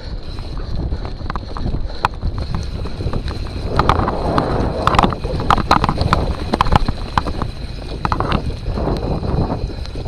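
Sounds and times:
bike rattling: 0.0s - 10.0s
wind buffeting microphone: 0.0s - 10.0s
tyres running over loose stone: 0.2s - 10.0s.

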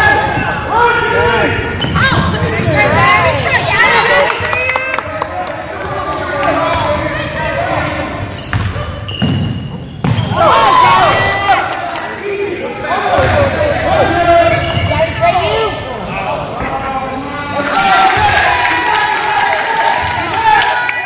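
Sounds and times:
sneakers squeaking: 0.1s - 4.5s, 6.6s - 11.0s, 12.3s - 17.1s
basketball bouncing: 8.5s - 10.3s, 13.2s - 13.5s.

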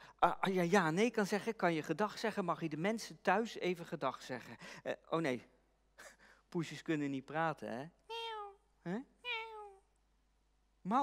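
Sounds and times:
man imitating cat meows: 8.1s - 9.8s.

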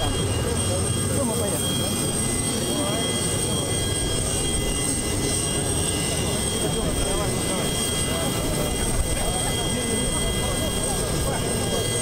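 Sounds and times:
jet engines rumbling and whining: 0.0s - 12.0s.

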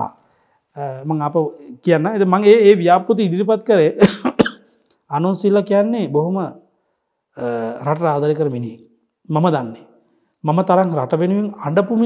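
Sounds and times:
man speaking: 0.8s - 4.5s, 7.4s - 12.0s
short sharp coughs: 4.0s - 4.8s.

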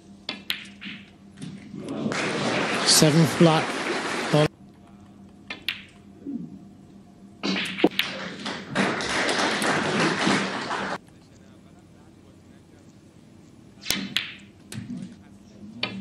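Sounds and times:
snooker balls clicking: 0.2s - 2.1s, 5.0s - 6.1s, 7.5s - 11.0s, 13.9s - 15.2s
crowd applause: 1.8s - 4.5s, 8.0s - 11.0s.

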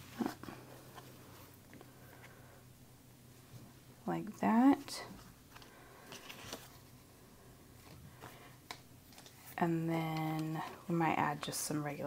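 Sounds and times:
paper rustling: 5.5s - 6.8s.

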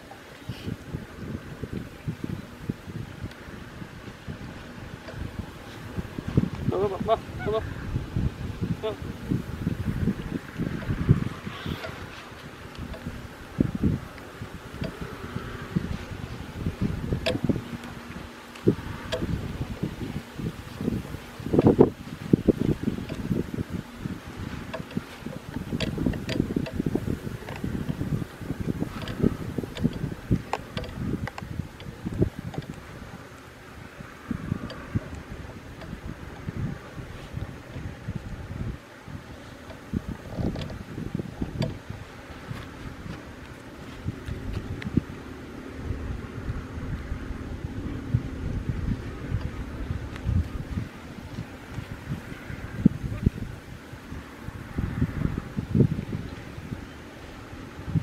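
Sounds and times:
wind buffeting microphone: 0.0s - 58.0s
small clicks and rustles: 15.9s - 33.5s, 39.5s - 40.9s.

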